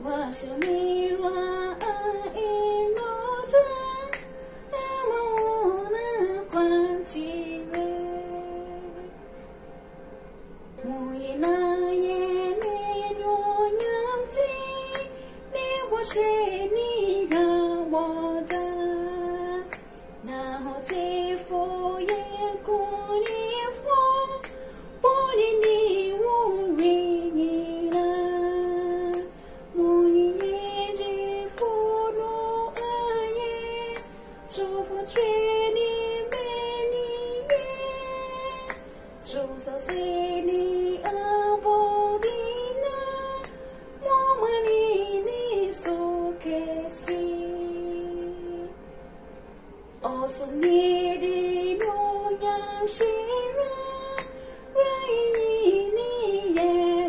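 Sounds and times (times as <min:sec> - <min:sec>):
woman singing a hymn: 0:00.0 - 0:09.2, 0:10.8 - 0:48.8, 0:50.0 - 0:57.0.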